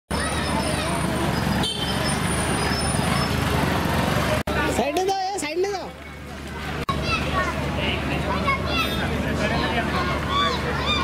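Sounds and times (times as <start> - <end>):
people's voices: 0.1 - 11.0
steady traffic: 0.1 - 11.0
motorcycle engine passing: 0.3 - 4.7.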